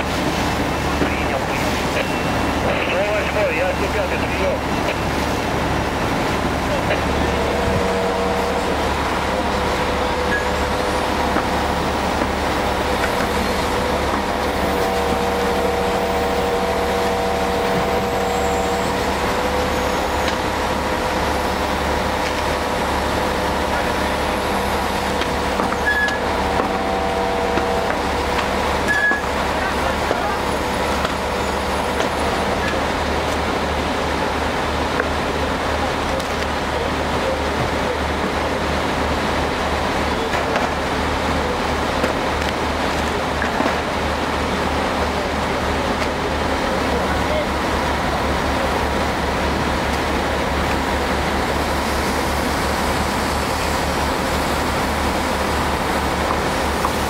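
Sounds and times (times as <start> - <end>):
fire engine motor and pump humming: 0.0 - 57.0
hiss of water and steam: 0.0 - 57.0.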